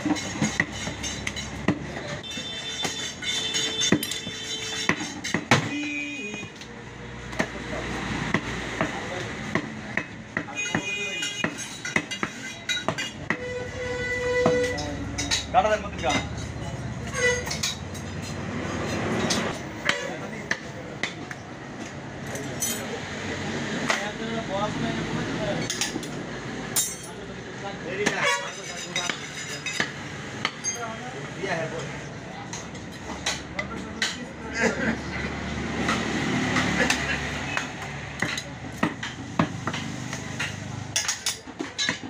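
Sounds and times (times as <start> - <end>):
steady background noise: 0.0 - 42.0.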